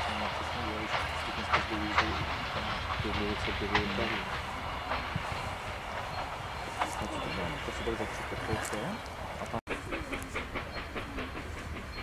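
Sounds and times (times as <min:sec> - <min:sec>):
train carriage rumbling: 0:00.0 - 0:12.0
voices talking: 0:00.0 - 0:12.0
wheels clicking over rail joints: 0:00.0 - 0:12.0.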